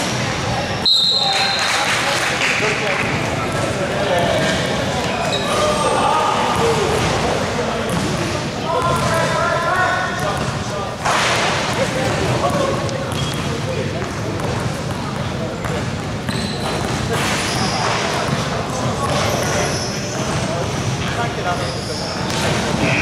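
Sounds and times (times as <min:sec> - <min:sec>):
players' voices and calls: 0:00.0 - 0:23.0
basketball bouncing on court floor: 0:07.9 - 0:09.3, 0:11.6 - 0:19.5.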